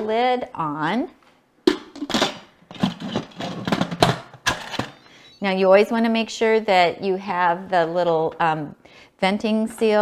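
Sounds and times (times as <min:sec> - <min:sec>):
lid scraping and knocking on pot: 0:01.7 - 0:05.0.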